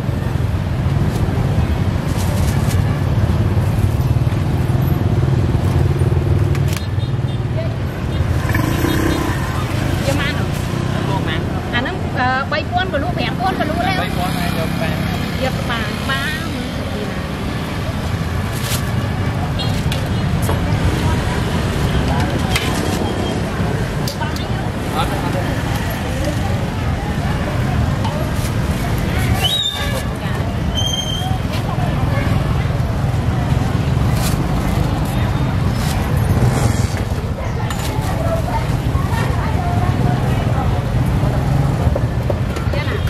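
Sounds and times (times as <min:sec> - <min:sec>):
motorbike and road traffic: 0:00.0 - 0:43.0
people talking: 0:07.4 - 0:43.0.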